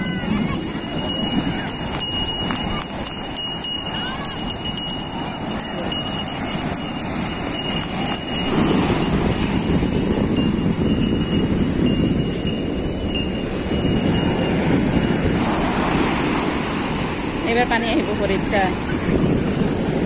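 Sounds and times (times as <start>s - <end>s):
faint jingle of small bells: 0.0s - 15.5s
sea surf washing over sand: 0.0s - 20.0s.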